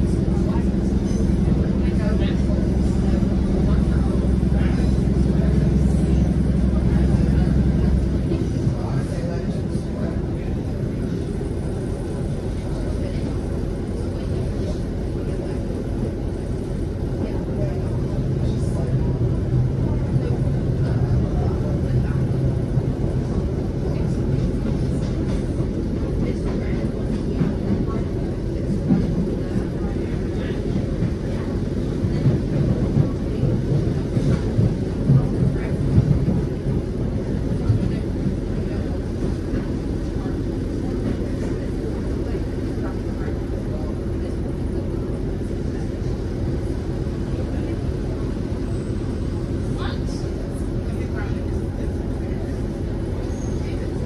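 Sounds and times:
train rumbling on rails: 0.0 - 54.0
train clattering over points: 12.4 - 46.2.

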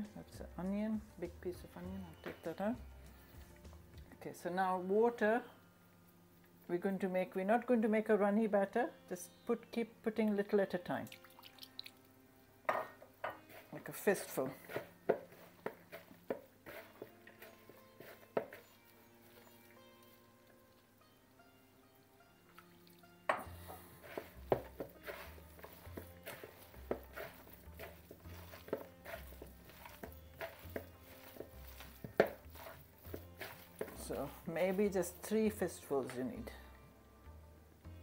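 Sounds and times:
hands squelching mixture in bowl: 13.5 - 20.8, 22.5 - 36.2.

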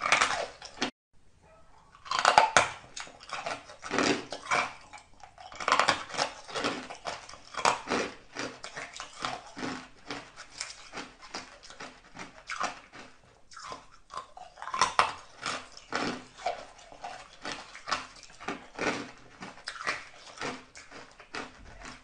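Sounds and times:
ice crunching in mouth: 0.0 - 0.9, 1.9 - 22.0.

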